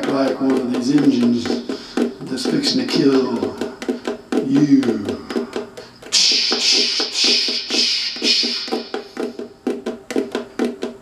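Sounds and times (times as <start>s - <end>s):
tapping on ukulele body: 0.0s - 11.0s
pulsing hiss: 5.2s - 9.5s.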